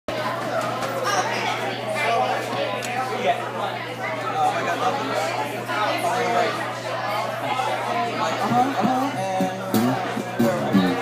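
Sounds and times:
people chatting: 0:00.1 - 0:11.0.

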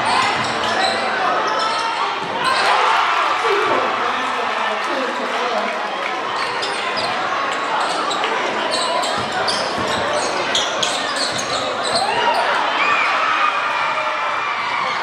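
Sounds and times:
crowd chatter: 0:00.0 - 0:15.0.

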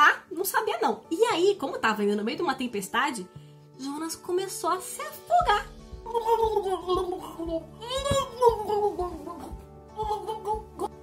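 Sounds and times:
woman making gurgling drowning noises: 0:06.0 - 0:11.0.

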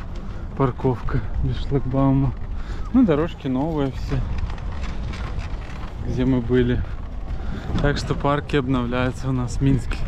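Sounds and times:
stroller wheels rolling over paving: 0:00.0 - 0:10.0.

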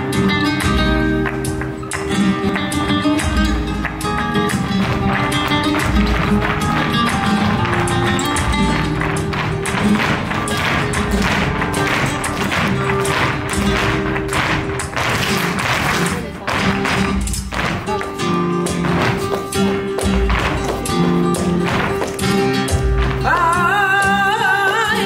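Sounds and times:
dancers' footwork taps: 0:00.0 - 0:25.0
flamenco guitar music: 0:00.0 - 0:25.0.

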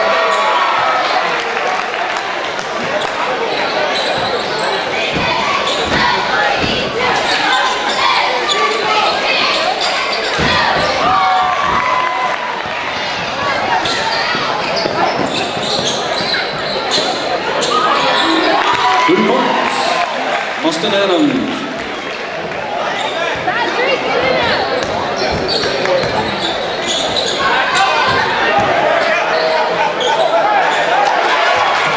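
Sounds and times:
crowd chatter and shouts: 0:00.0 - 0:31.9.

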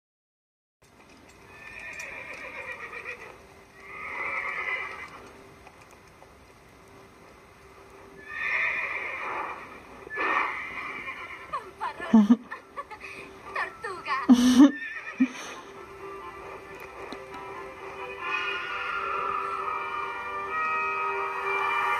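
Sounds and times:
horse whinnying: 0:01.5 - 0:05.4, 0:08.2 - 0:11.6, 0:14.4 - 0:15.6, 0:18.2 - 0:21.8.

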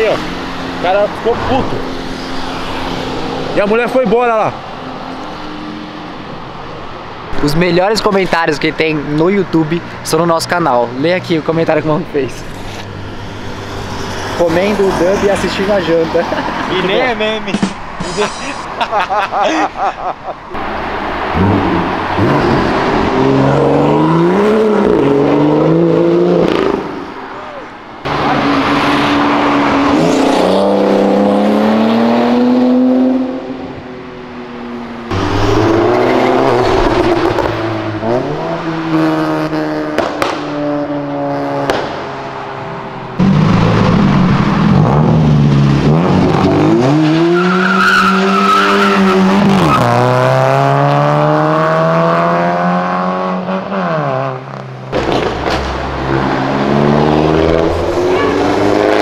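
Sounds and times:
car engines revving hard: 0:00.0 - 0:59.0.

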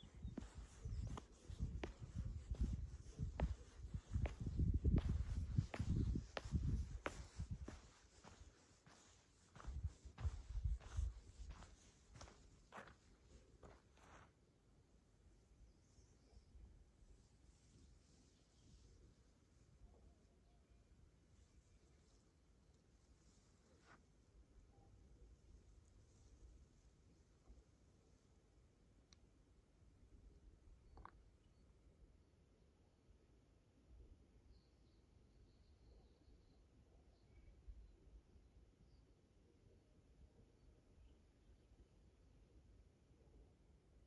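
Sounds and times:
small bird chirping: 0:00.0 - 0:09.0
footsteps on dry dirt: 0:00.0 - 0:14.3.

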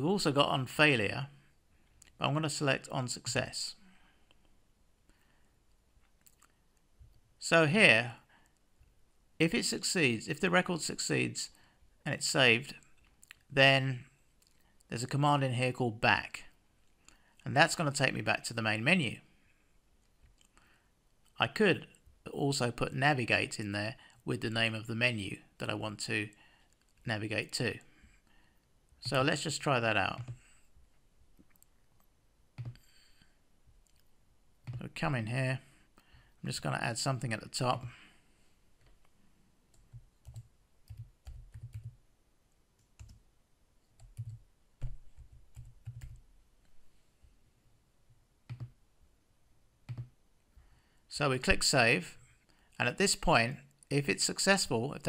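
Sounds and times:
person speaking: 0:00.0 - 0:01.4, 0:02.0 - 0:03.8, 0:07.4 - 0:08.3, 0:09.4 - 0:16.6, 0:17.4 - 0:19.3, 0:21.3 - 0:26.4, 0:27.0 - 0:28.0, 0:29.0 - 0:30.5, 0:33.8 - 0:35.8, 0:36.4 - 0:38.1, 0:51.1 - 0:52.2, 0:52.8 - 0:55.0
typing on computer keyboard: 0:32.6 - 0:32.8, 0:39.8 - 0:42.0, 0:42.9 - 0:43.2, 0:44.0 - 0:46.2, 0:48.5 - 0:48.8, 0:49.9 - 0:50.1.

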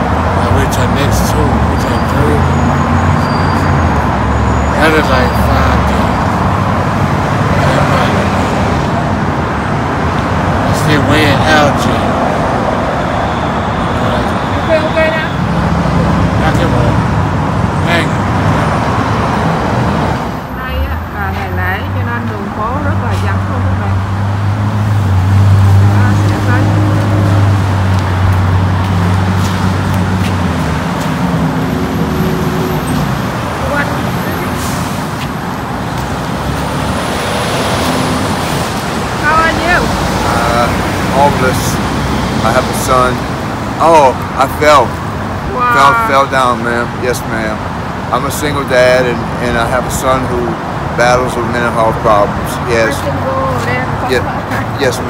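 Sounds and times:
cars passing on busy road: 0:00.0 - 0:55.0.

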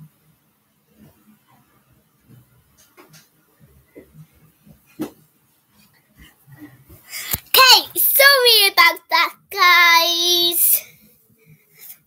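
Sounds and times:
girl singing unaccompanied: 0:07.3 - 0:10.9.

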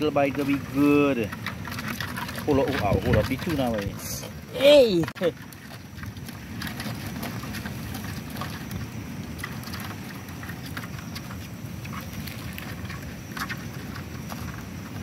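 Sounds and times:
crab shells clicking and scraping: 0:00.0 - 0:15.0.

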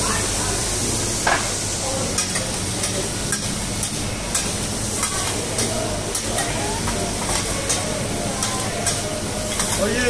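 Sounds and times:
seafood sizzling on a griddle: 0:00.0 - 0:10.0
metal spatulas scraping and clicking: 0:07.2 - 0:09.9.

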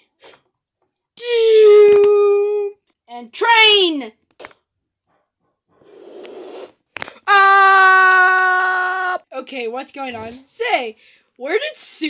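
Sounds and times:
person blowing breathy whoosh: 0:05.8 - 0:06.8.

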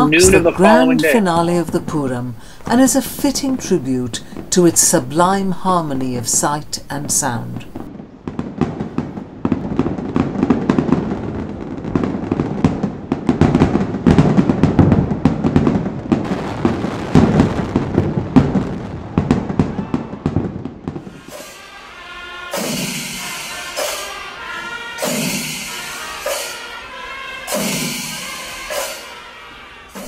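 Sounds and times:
fireworks bangs and crackles: 0:00.0 - 0:30.0
music: 0:21.2 - 0:30.0.

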